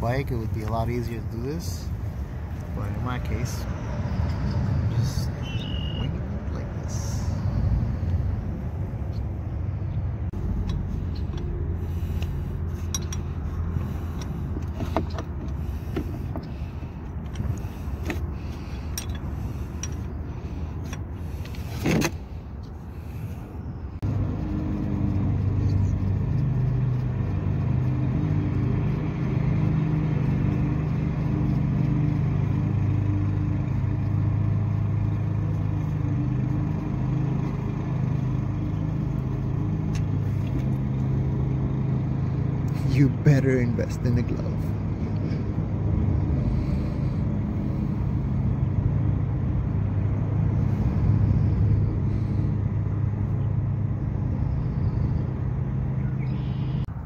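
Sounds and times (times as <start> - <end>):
low motor drone: 0.0 - 57.0.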